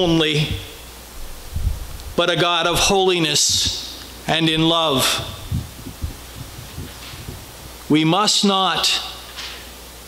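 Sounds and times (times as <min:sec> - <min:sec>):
faint room hum: 0:00.0 - 0:10.0
soft low thumps: 0:01.2 - 0:02.2, 0:04.6 - 0:07.9.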